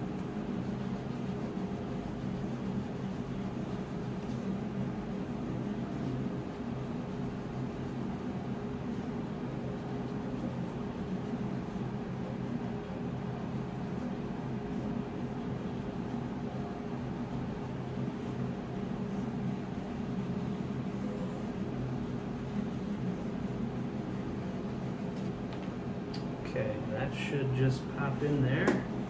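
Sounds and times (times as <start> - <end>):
low hum with hiss: 0.0 - 29.0.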